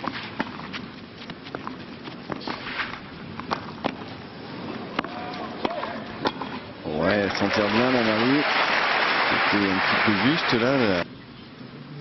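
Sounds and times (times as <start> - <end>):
crowd background: 4.5 - 11.1.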